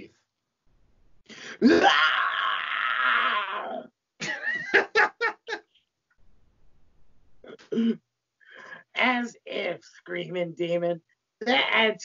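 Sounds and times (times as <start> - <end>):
man's rough demon scream: 1.6 - 3.9
laughter: 4.2 - 5.6.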